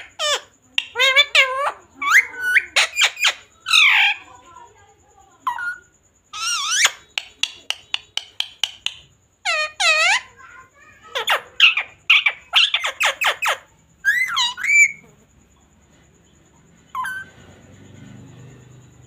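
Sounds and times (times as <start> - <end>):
parakeet calling and screeching: 0.0 - 4.5, 5.5 - 15.2, 16.9 - 17.5.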